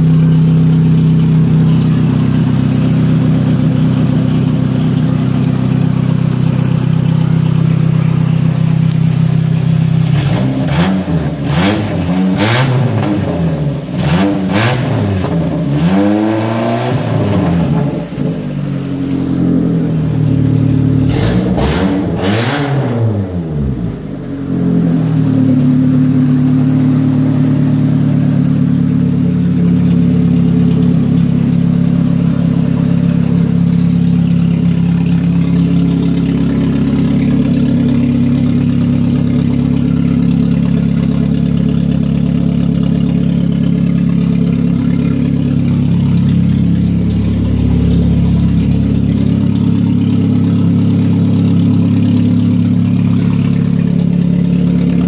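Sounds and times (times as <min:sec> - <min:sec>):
car engine idling: 0:00.0 - 0:55.0.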